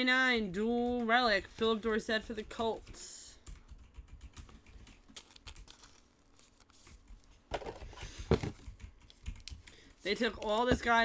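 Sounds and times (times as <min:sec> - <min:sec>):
cards clicking and brushing: 0:02.6 - 0:11.0.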